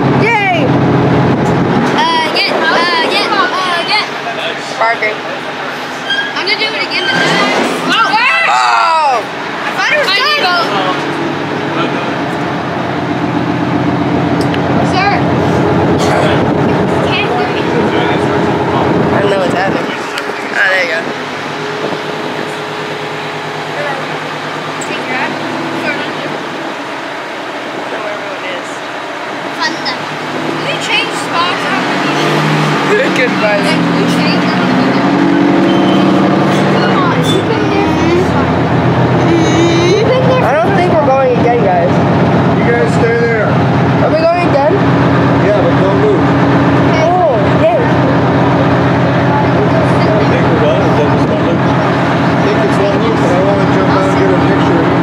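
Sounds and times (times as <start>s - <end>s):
tank engine running: 0.0s - 55.0s.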